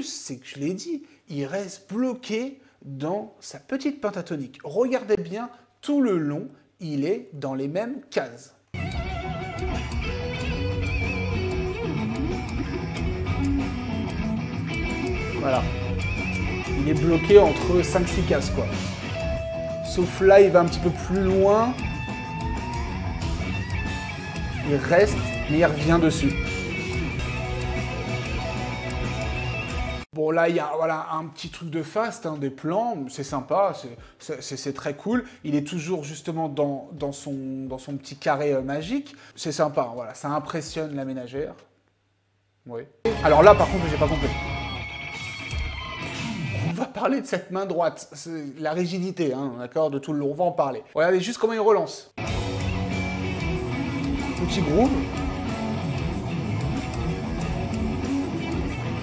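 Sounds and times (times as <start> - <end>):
electric guitar lead: 8.8 - 30.0, 43.1 - 46.7, 52.2 - 59.0
live band jamming: 8.8 - 30.0
bass: 8.8 - 30.1, 43.0 - 46.8, 52.2 - 59.0
drums: 8.8 - 30.1, 43.1 - 46.8, 52.2 - 59.0.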